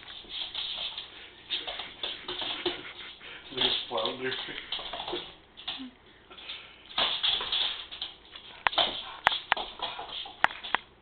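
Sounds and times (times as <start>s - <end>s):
dog claws clicking on tile floor: 0.0s - 5.8s, 6.4s - 10.9s.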